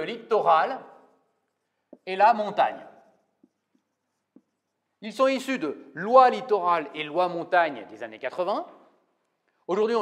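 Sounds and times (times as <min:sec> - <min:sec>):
marker writing on whiteboard: 0:00.8 - 0:05.0.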